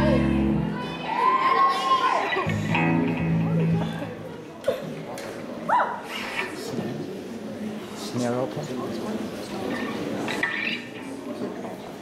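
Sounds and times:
voices in a hall: 0:00.0 - 0:12.0.

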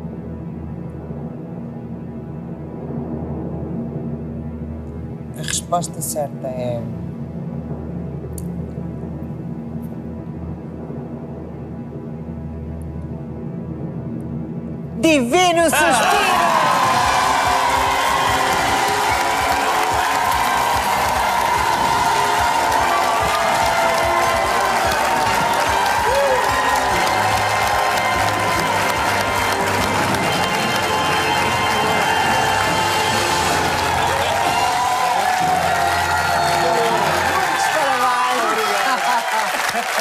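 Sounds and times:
game show music: 0:13.2 - 0:40.0
audience cheering and applauding: 0:15.7 - 0:40.0.

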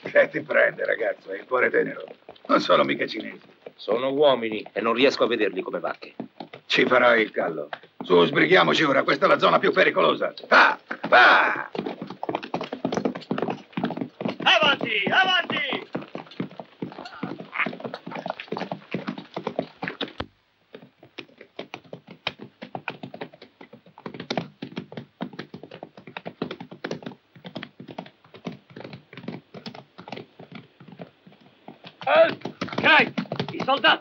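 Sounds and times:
horses galloping on hard ground: 0:00.0 - 0:34.0
man calling out: 0:10.4 - 0:11.7, 0:14.4 - 0:15.8, 0:32.1 - 0:34.0.

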